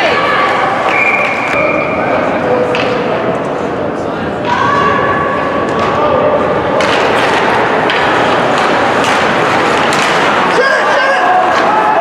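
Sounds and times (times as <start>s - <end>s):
sticks and puck knocking: 6.8s - 10.6s
skates scraping ice: 6.8s - 12.0s
voices shouting: 10.4s - 12.0s.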